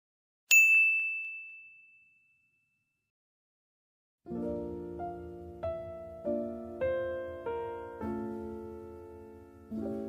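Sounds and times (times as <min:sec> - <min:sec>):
high bell-like ding: 0:00.5 - 0:02.9.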